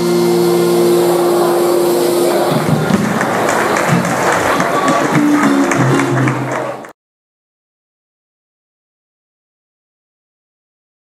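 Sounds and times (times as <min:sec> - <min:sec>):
acoustic guitar chord ringing: 0:00.0 - 0:03.2
drum kit: 0:00.0 - 0:06.9.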